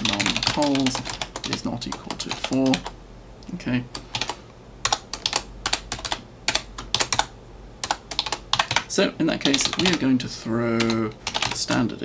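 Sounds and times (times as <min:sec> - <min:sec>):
computer keyboard typing: 0:00.0 - 0:03.0, 0:03.9 - 0:10.1, 0:10.8 - 0:11.9.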